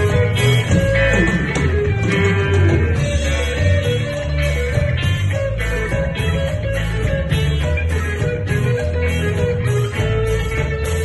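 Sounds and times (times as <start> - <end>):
sliding guitar note: 0.0 - 10.6
live rock band playing: 0.0 - 11.0.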